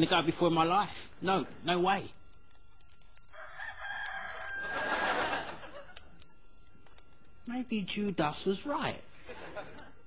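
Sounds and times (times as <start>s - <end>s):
rooster crowing: 3.3s - 6.0s.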